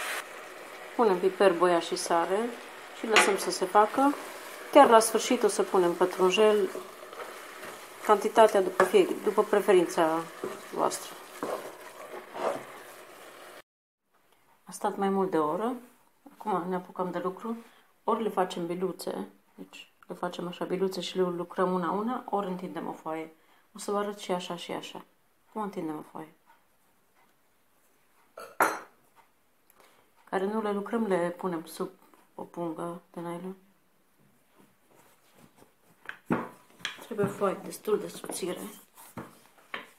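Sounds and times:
meat sizzling in a pot: 0:00.0 - 0:13.6
wooden spoon scraping pot: 0:01.8 - 0:13.6, 0:36.6 - 0:39.9.

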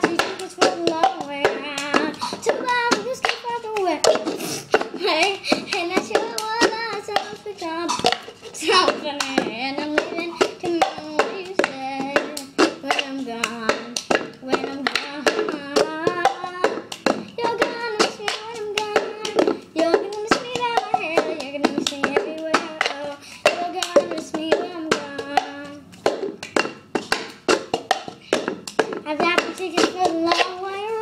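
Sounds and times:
girl singing: 0:00.0 - 0:26.8, 0:27.4 - 0:31.0
plastic cup knocking on tabletop: 0:00.0 - 0:31.0.

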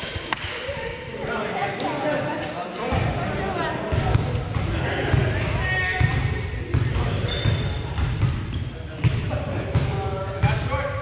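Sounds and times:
players chattering in a gym: 0:00.0 - 0:11.0.

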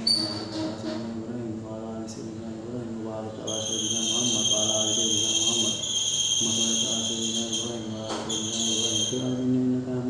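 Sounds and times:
man chanting prayer: 0:00.0 - 0:10.0
high-pitched chirring: 0:03.4 - 0:09.4.

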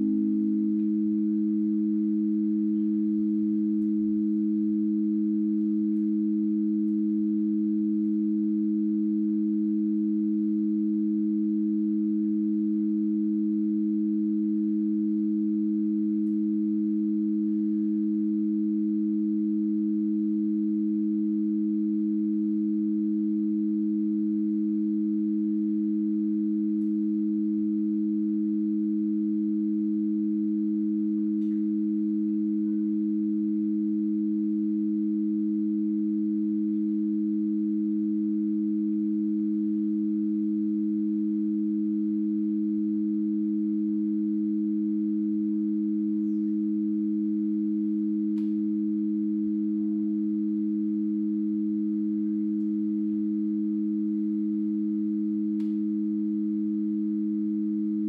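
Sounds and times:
sustained low clarinet tones: 0:00.0 - 0:08.5, 0:30.9 - 0:34.6.

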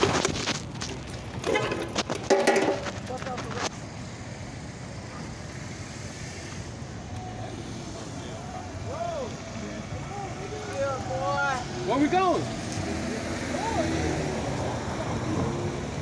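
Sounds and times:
street traffic rumble: 0:00.0 - 0:16.0
car passing: 0:04.0 - 0:16.0.

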